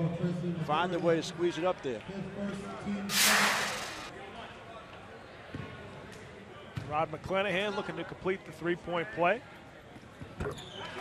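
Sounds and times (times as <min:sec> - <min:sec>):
transition swoosh: 0:03.1 - 0:04.1.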